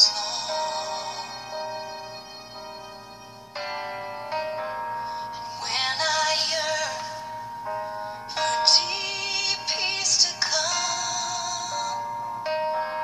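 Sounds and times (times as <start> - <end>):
person singing with vibrato: 0.0 - 2.8, 5.0 - 12.5
sustained chords: 0.0 - 13.0.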